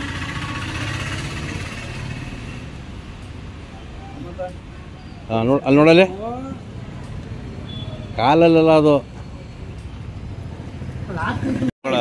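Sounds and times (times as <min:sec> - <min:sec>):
vehicle engine running: 0:00.0 - 0:03.4.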